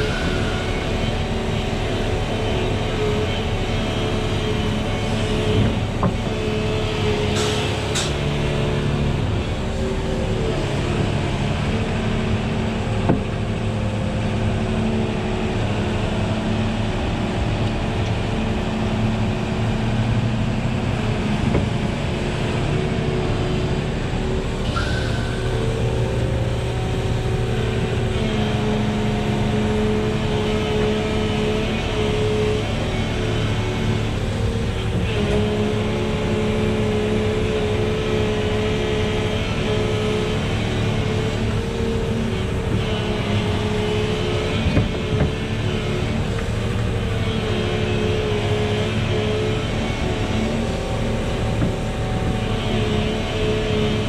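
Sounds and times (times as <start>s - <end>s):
excavator engine and hydraulics: 0.0s - 54.0s.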